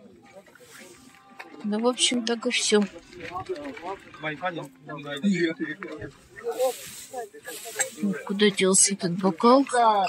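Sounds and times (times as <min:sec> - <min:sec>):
soft hissing rustle: 0:06.4 - 0:08.4.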